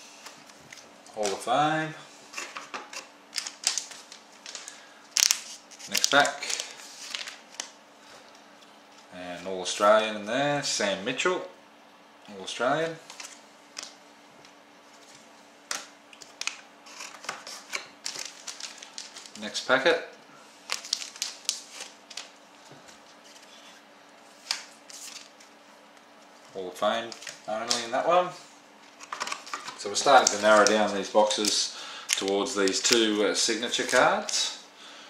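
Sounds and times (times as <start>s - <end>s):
cards clicking and rustling: 2.4s - 7.8s, 15.0s - 19.4s, 27.1s - 27.9s, 28.8s - 34.5s
foil wrapper crinkling: 2.4s - 7.8s, 15.0s - 19.6s, 20.6s - 22.4s, 28.8s - 34.6s.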